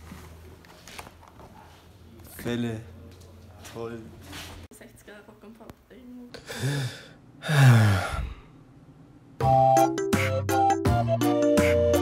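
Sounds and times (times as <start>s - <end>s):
person sighing: 6.4s - 8.5s.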